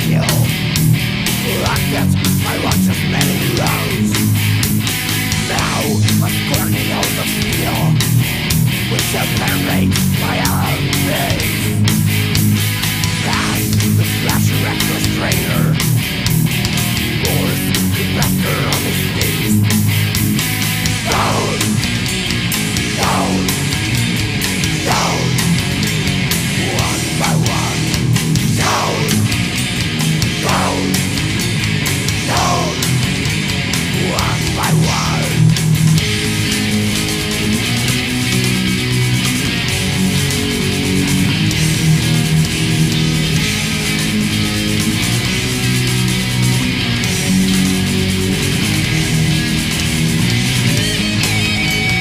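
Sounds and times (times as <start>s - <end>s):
bass: 0.0s - 52.0s
distorted electric guitar riff: 0.0s - 52.0s.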